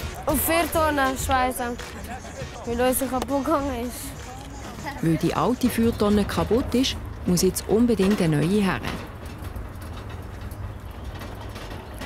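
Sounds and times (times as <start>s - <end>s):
metal cart rattling and clicking: 0.0s - 12.0s.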